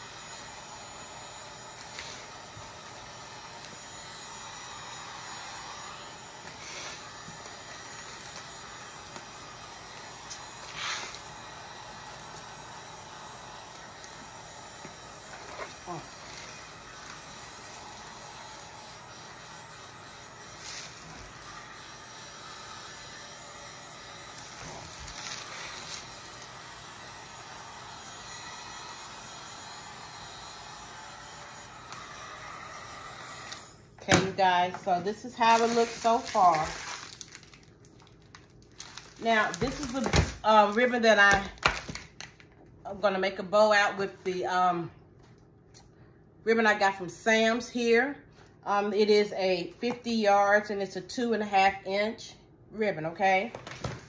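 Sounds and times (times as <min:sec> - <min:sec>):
heat gun blowing air: 0:00.0 - 0:37.2, 0:39.1 - 0:41.5
plastic film rustling: 0:35.4 - 0:40.9.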